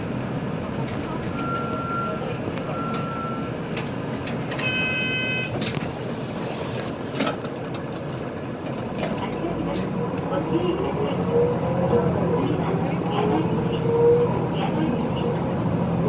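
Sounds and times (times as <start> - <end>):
bus engine and road noise: 0.0 - 16.0
short high beeps: 4.6 - 5.5.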